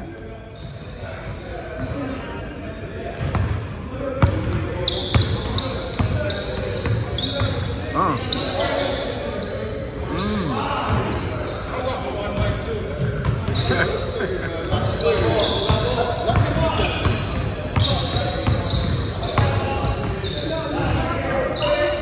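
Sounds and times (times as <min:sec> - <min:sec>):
players' voices: 0:00.0 - 0:22.0.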